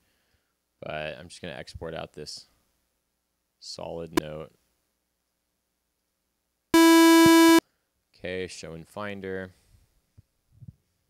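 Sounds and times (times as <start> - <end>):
held synthesizer note: 6.8 - 7.6.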